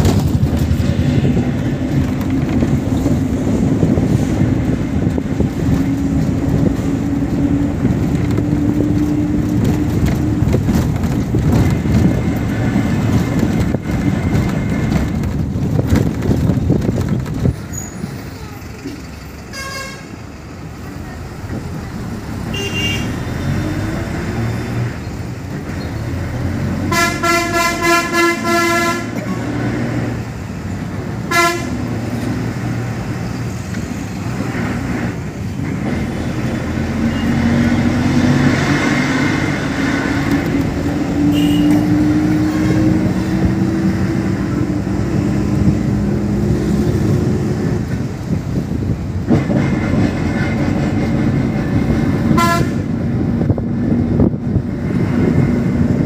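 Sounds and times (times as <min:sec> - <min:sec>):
bus engine running: 0:00.0 - 0:56.0
road and wind noise: 0:00.0 - 0:56.0
horn short toots: 0:41.3 - 0:41.9, 0:52.4 - 0:53.0.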